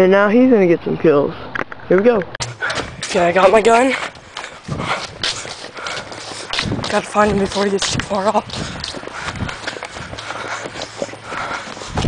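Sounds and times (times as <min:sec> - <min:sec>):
footsteps running on grass: 0:02.5 - 0:12.0.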